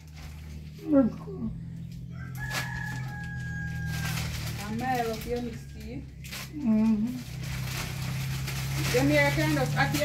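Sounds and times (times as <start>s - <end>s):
rooster crowing: 2.0s - 4.5s.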